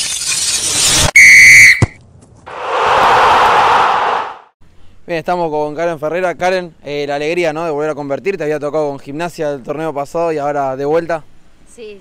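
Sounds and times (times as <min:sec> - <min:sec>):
whistle blast: 0:01.2 - 0:02.0
crowd cheering: 0:02.5 - 0:04.5.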